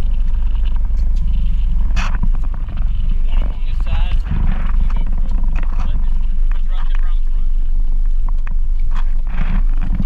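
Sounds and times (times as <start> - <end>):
boat noise in choppy water: 0.0 - 10.0
wind rumble: 0.0 - 10.0
muffled voices: 1.3 - 8.0.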